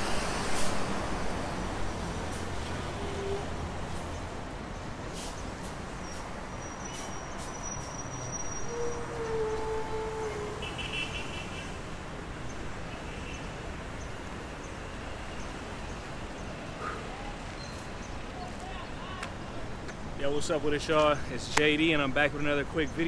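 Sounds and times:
city street traffic: 0:00.0 - 0:23.0.

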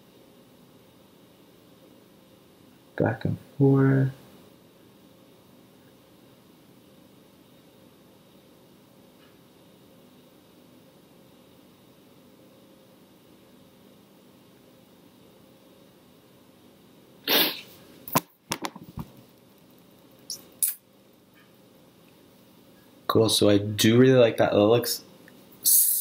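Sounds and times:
short breathy burst: 0:17.2 - 0:17.8.

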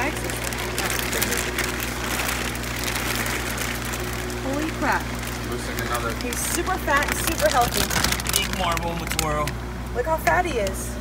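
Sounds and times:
plastic bag crinkling: 0:00.0 - 0:09.6
steady low hum: 0:00.0 - 0:11.0.

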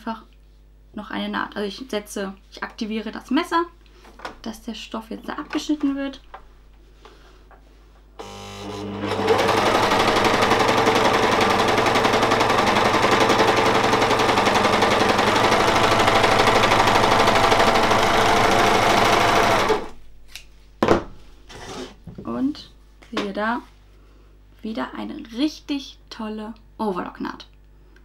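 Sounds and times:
overlock sewing machine running: 0:08.2 - 0:20.0.

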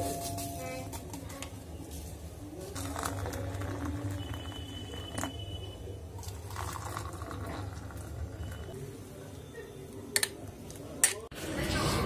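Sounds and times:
coffee pouring into glass cup: 0:02.6 - 0:08.8.

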